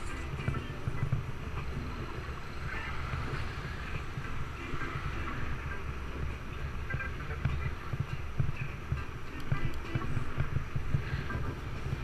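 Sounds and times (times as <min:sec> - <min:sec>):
road and traffic noise: 0:00.0 - 0:12.0
wind rumbling on microphone: 0:00.0 - 0:12.0.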